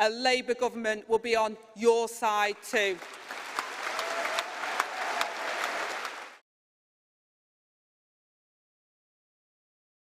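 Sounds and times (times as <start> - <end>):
audience applauding: 2.9 - 6.4.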